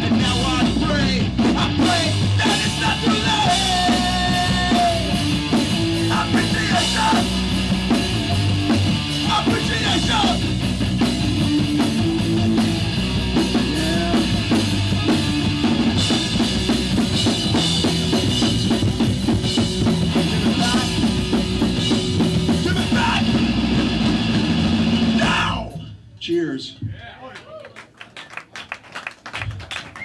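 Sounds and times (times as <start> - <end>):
punk band playing live: 0.0 - 26.0.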